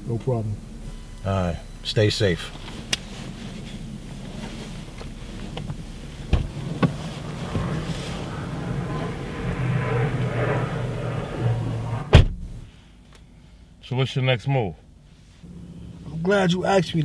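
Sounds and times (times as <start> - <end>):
car engine idling: 0.0 - 12.7, 14.8 - 17.0
car door shutting: 2.0 - 8.2, 11.9 - 12.6
clothing rustling: 2.5 - 8.2.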